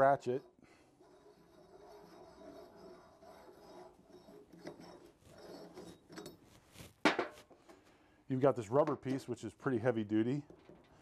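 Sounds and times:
steel pieces rubbing: 0.0 - 7.0
small metal clicks and knocks: 10.4 - 11.0.

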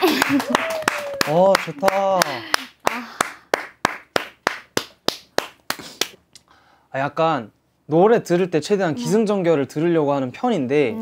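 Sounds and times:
person clapping hands: 0.0 - 6.2.

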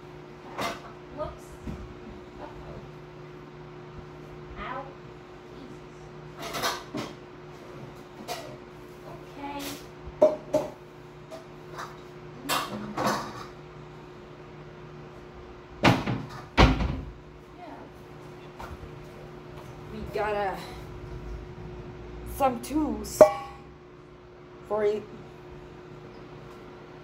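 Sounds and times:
steady low hum: 0.0 - 27.0
kitchen knocks and clicks: 15.8 - 17.1.

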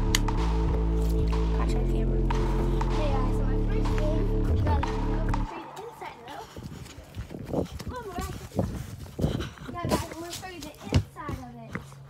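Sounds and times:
footsteps running on grass: 5.6 - 12.0.

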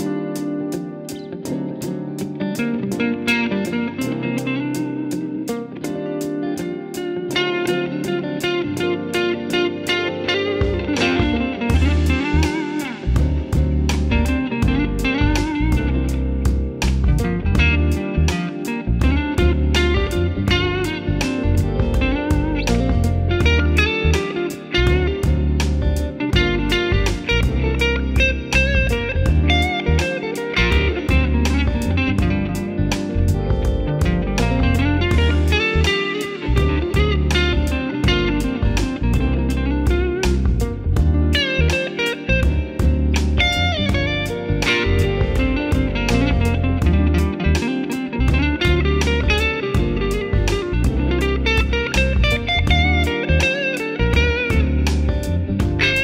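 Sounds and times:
electric guitar with bent notes: 0.0 - 56.0.

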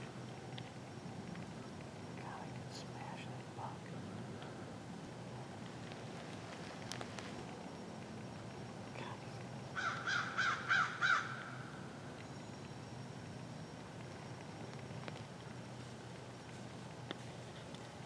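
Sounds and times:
crow cawing: 9.8 - 11.6.

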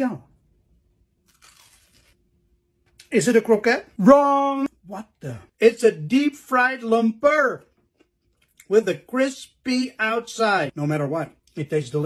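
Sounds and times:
faint crunch of teeth biting: 1.2 - 2.2.

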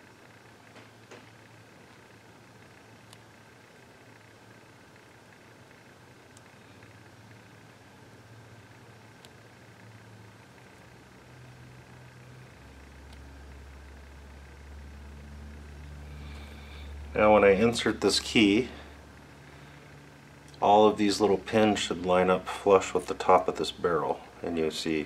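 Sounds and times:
low steady hum: 0.0 - 25.0.

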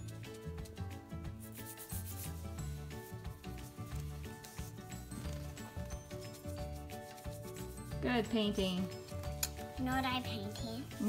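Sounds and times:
background music: 0.0 - 11.0
paintbrush scrubbing on paper: 1.4 - 8.0.

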